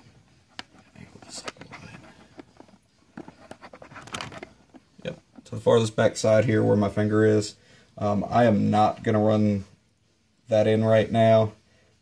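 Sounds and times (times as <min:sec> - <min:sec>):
rustling: 0:00.0 - 0:05.9.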